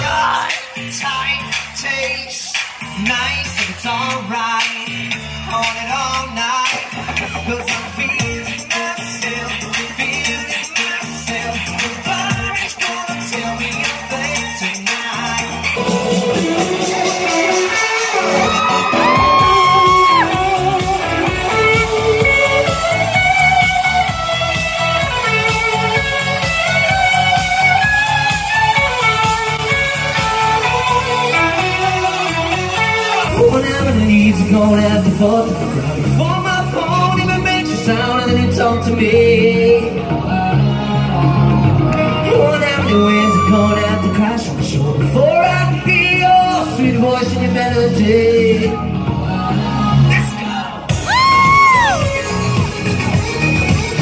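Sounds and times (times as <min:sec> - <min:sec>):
bass and drum beat: 0:00.0 - 0:50.3, 0:50.9 - 0:54.0
electric guitar: 0:00.0 - 0:54.0.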